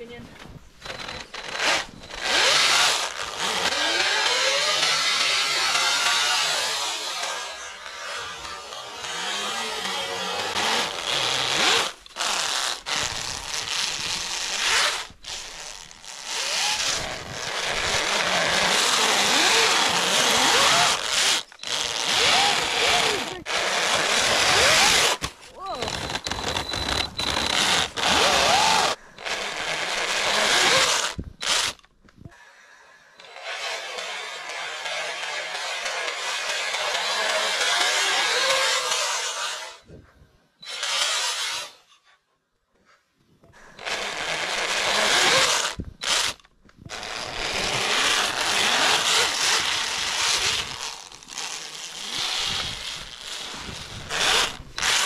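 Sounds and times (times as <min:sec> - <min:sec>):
model snowmobile motor whining: 0:00.8 - 0:31.9, 0:33.2 - 0:40.0, 0:43.8 - 0:55.0.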